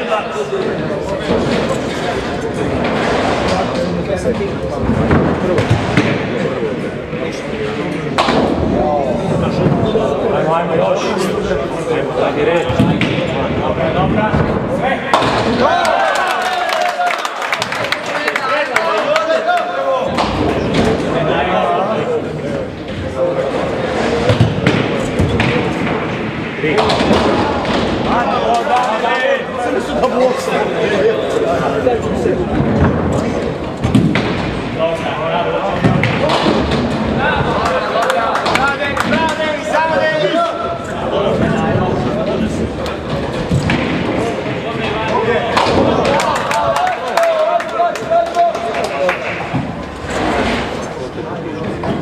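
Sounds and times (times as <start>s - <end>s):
indistinct chatter: 0.0s - 52.0s
bowling balls thudding on lanes: 1.2s - 6.7s, 23.6s - 28.6s, 32.1s - 34.8s, 35.6s - 39.4s, 41.2s - 46.8s.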